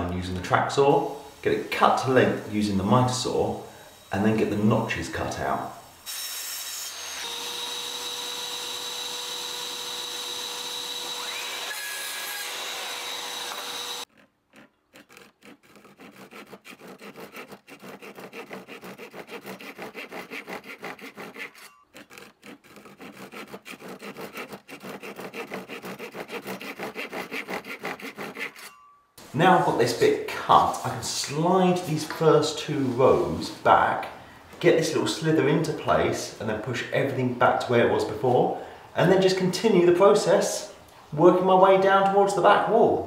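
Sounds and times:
mitre saw whine: 0.8s - 14.1s
hand saw cutting wood: 6.0s - 28.8s.

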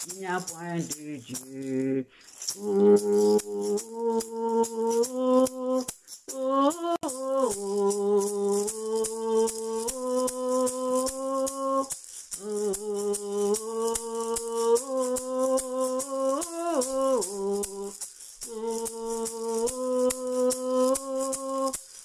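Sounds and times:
woman humming a melody: 0.0s - 21.8s
maraca rattling: 0.0s - 22.0s.

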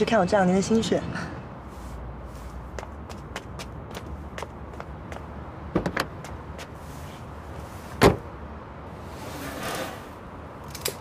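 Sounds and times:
footsteps on pavement: 2.2s - 6.8s.

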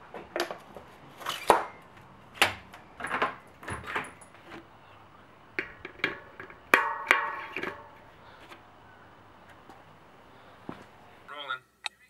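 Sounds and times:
metallic pings of bicycle spokes: 5.6s - 8.1s.

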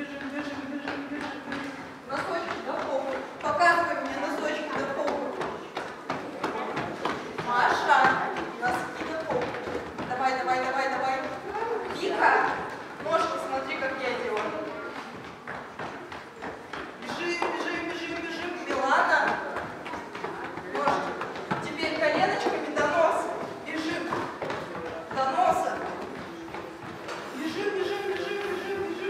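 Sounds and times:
children running on wooden floor: 0.0s - 29.0s.

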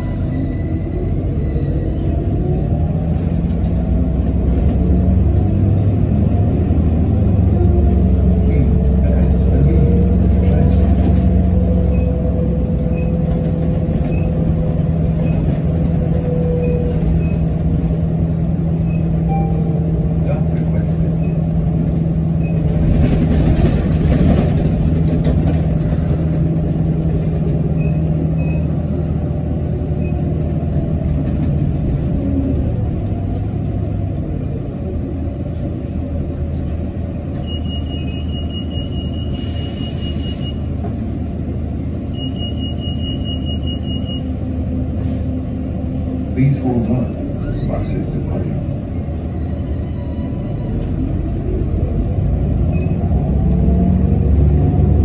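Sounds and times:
bus engine hum: 0.0s - 55.0s
faint high squeaks: 47.4s - 50.9s.

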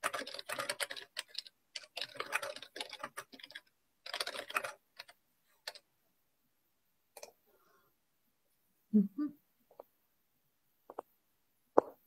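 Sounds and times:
typing on keyboard: 0.0s - 5.9s.

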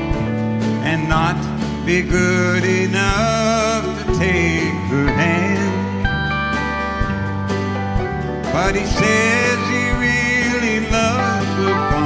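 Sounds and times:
country band playing a ballad: 0.0s - 12.0s
electric guitar: 0.0s - 12.0s.

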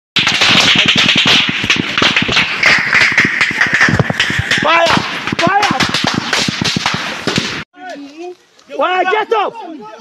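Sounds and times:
automatic rifle gunfire: 0.2s - 7.6s.

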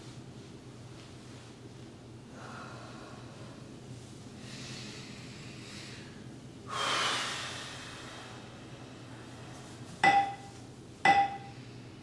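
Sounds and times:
soft breathing: 2.3s - 10.0s.

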